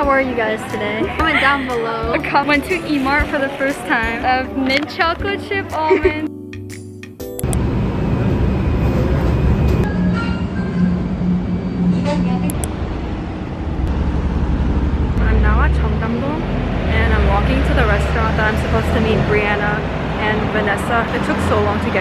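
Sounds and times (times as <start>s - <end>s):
street traffic noise: 0.0s - 6.3s, 7.2s - 22.0s
low motor hum: 7.4s - 20.8s
subway train rumbling: 7.4s - 22.0s.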